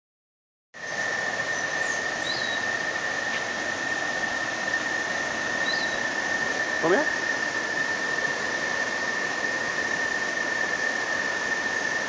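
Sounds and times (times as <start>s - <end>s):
fast-flowing river rushing: 0.8s - 12.0s
thin high-pitched whine: 0.8s - 12.0s.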